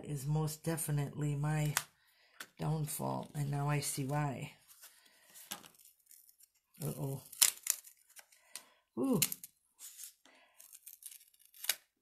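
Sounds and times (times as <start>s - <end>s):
paper peeling and tearing: 5.6s - 8.3s, 9.8s - 12.0s.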